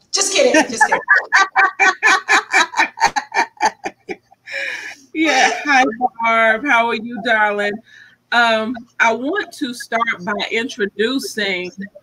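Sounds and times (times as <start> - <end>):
woman laughing loudly: 0.6 - 7.8.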